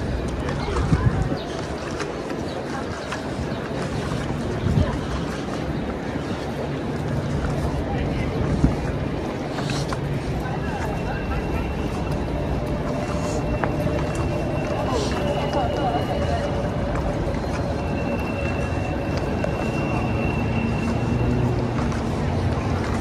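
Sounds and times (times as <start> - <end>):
passersby's voices: 0.0 - 23.0
traffic hum: 0.0 - 23.0.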